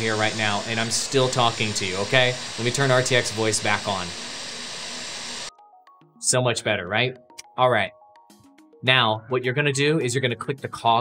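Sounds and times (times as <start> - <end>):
loud steady room noise hiss: 0.0 - 5.5
faint background music: 5.5 - 11.0.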